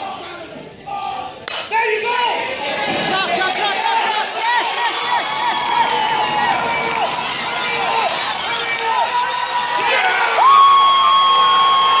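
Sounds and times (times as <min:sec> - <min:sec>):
crowd cheering and yelling: 0:01.7 - 0:12.0.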